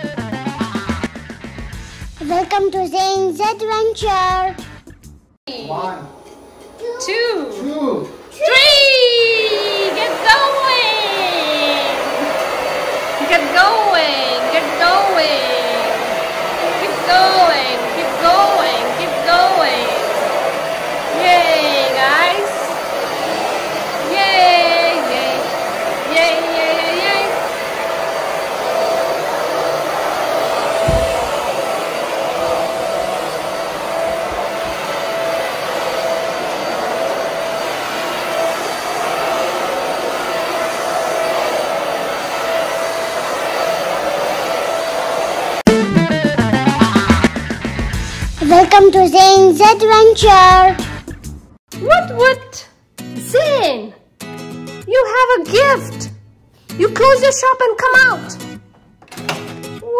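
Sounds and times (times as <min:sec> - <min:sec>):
vacuum cleaner motor running: 0:06.6 - 0:45.7.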